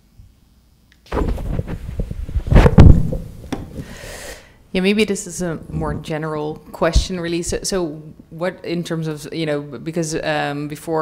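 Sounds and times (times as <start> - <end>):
knocks on microphone: 1.1 - 3.9
microphone handling rumble: 1.1 - 4.0, 5.4 - 7.8.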